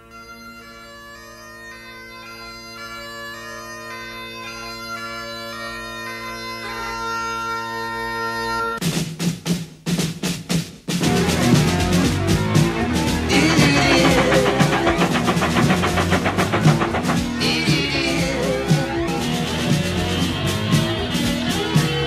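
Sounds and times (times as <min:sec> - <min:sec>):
bagpipes playing slow tune: 0:00.0 - 0:08.8
heavy drum beats: 0:08.8 - 0:22.0.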